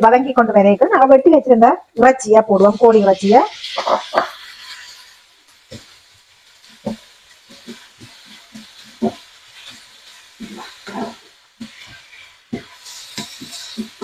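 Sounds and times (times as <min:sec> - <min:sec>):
chicken and onions sizzling: 0:00.0 - 0:14.0
wooden spatula scraping pan: 0:02.6 - 0:06.0, 0:06.6 - 0:14.0.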